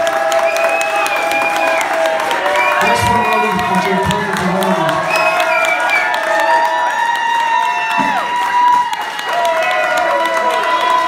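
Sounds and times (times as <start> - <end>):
audience applauding: 0.0 - 11.0
audience cheering and whooping: 0.0 - 11.0.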